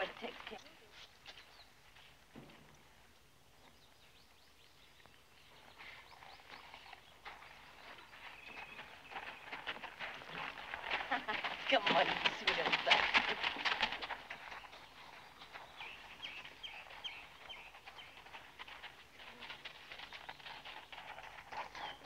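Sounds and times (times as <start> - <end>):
horse hooves on packed dirt: 0.0 - 22.0.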